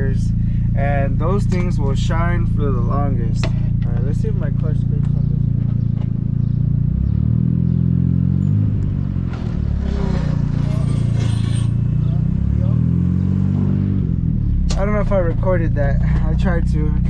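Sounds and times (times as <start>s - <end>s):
car engine accelerating: 0.0s - 17.0s.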